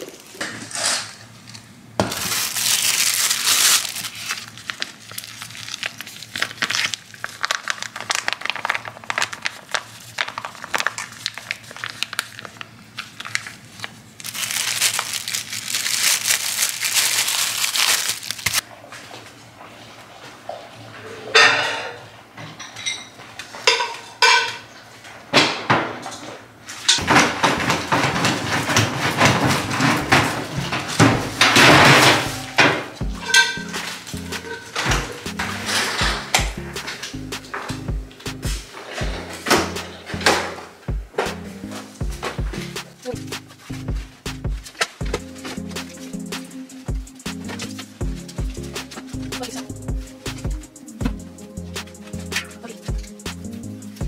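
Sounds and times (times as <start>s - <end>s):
plastic bag rustling: 0.0s - 18.6s, 26.7s - 54.0s
trash bag rustling: 2.0s - 12.6s, 13.2s - 18.6s, 27.0s - 54.0s
dry kibble rattling in metal bowl: 14.2s - 18.6s, 27.0s - 37.0s, 51.9s - 53.3s.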